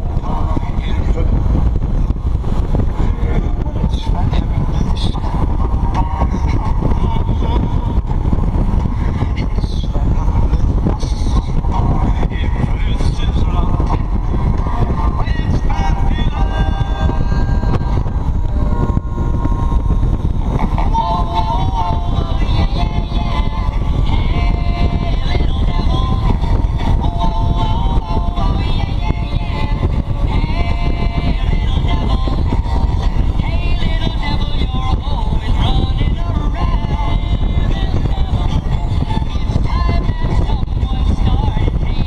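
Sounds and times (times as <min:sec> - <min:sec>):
wind rushing on microphone: 0:00.0 - 0:42.0.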